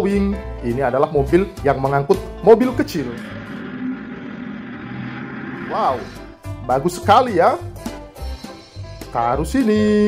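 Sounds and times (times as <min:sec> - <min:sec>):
truck engine running: 0:02.7 - 0:06.6.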